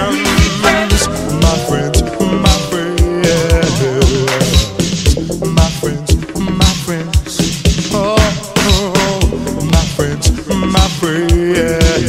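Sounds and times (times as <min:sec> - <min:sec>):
held chord sliding downward: 0:00.7 - 0:05.0.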